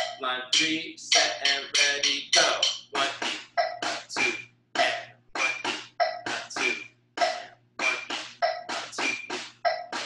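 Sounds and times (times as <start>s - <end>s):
drum struck with sticks: 0.0s - 10.0s.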